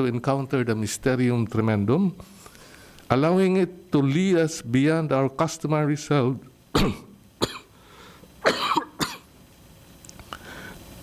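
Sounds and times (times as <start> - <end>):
man coughing into a microphone: 6.8 - 7.8, 8.4 - 9.3.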